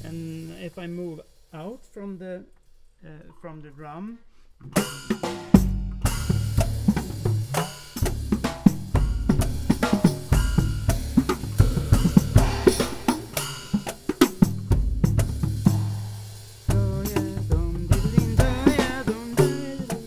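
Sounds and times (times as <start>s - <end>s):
cymbal wash: 0.0s - 2.0s, 4.8s - 20.0s
drum set played with stick and fingers: 0.0s - 3.0s, 4.5s - 20.0s.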